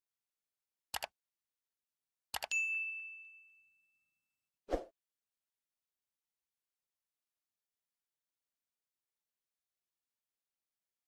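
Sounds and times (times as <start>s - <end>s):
bell ding: 2.5s - 4.1s.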